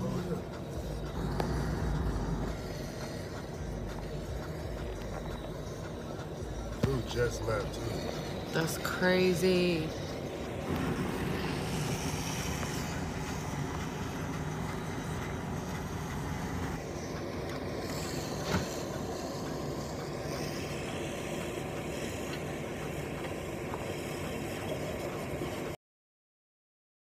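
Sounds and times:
hose spraying water: 0.0s - 25.6s
fire engine rumble: 0.0s - 25.8s.

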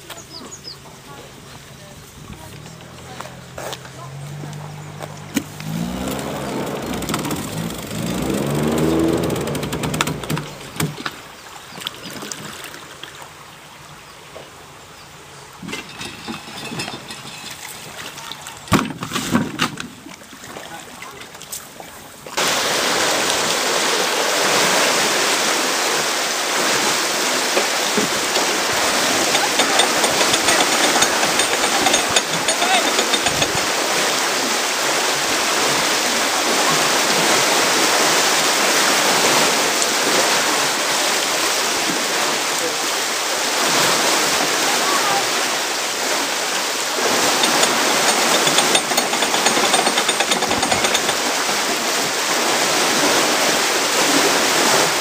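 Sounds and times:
faint voices: 0.0s - 10.8s, 27.7s - 33.8s
water rushing into lock: 1.0s - 55.0s
low engine note: 2.0s - 11.2s
knocks: 5.3s - 11.2s, 29.1s - 33.7s, 47.4s - 51.3s.

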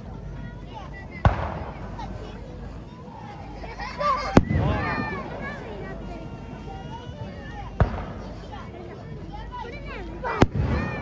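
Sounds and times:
firework shell bang: 1.2s - 1.9s, 4.3s - 5.1s, 7.8s - 8.3s.

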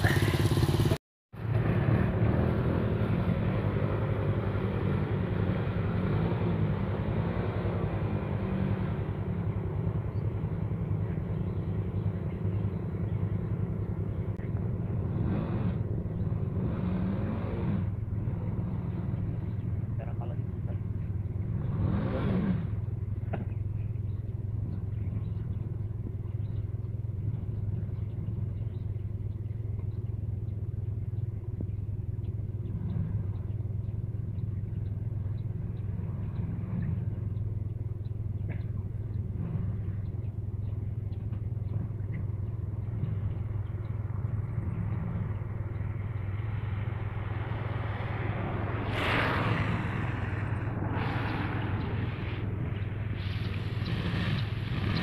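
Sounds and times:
motorcycle engine under load: 0.0s - 21.9s, 49.7s - 55.0s.

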